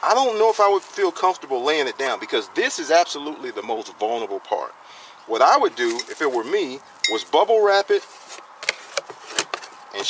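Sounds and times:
cardboard scraping: 7.8 - 10.0.

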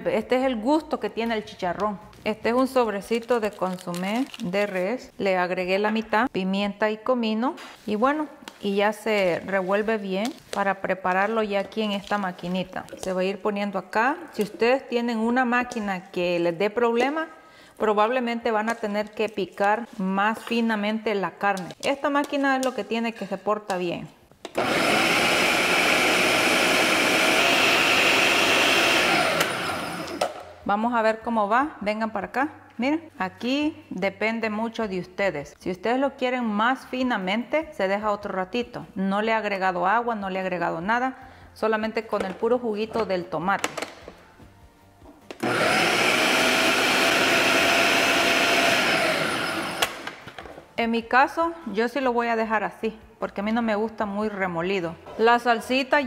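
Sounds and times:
food processor motor whirring: 24.6 - 30.3, 45.4 - 50.0.

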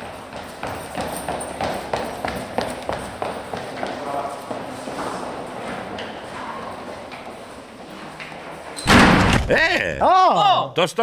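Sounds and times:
hard footsteps clattering: 0.0 - 8.6.

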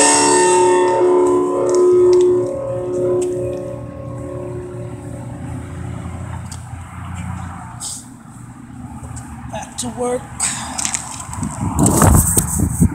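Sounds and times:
cigar box guitar notes: 0.0 - 6.7
low engine rumble: 0.0 - 12.9.

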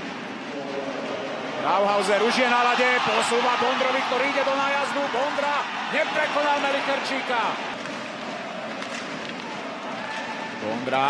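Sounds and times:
crowd noise: 0.0 - 11.0
hockey sticks and puck knocks: 7.7 - 10.5.

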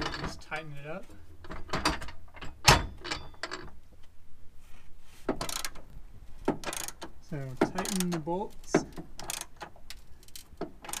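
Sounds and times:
ratchet wrench clicking: 5.4 - 5.8, 6.6 - 7.1, 8.9 - 11.0.

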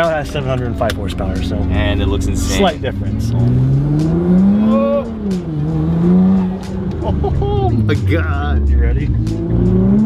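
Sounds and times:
car engine accelerating: 0.0 - 10.0.

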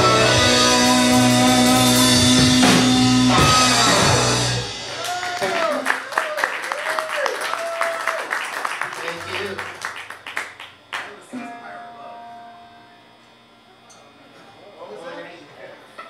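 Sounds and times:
audience clapping and cheering: 4.8 - 11.2
quiet held tone: 11.3 - 15.0.

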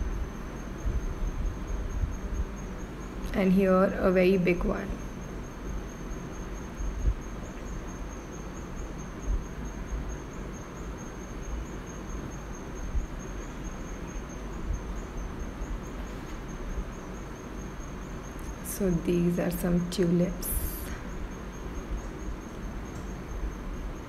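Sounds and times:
thin high-pitched whine: 0.0 - 24.0.

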